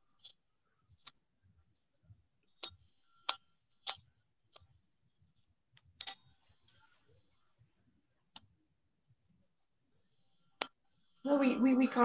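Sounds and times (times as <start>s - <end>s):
fingers tapping a phone: 0.0s - 7.2s, 10.2s - 11.0s.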